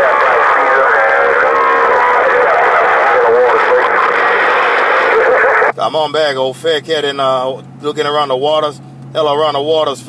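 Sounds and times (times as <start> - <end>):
radio static hiss: 0.0 - 5.7
distorted radio voice: 0.0 - 5.8
wavering radio tones: 0.0 - 5.8.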